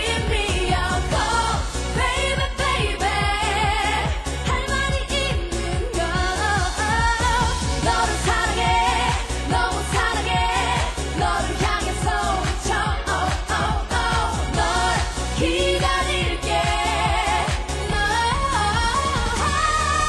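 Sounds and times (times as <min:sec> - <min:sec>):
dance beat: 0:00.0 - 0:20.0
woman singing: 0:00.0 - 0:20.0.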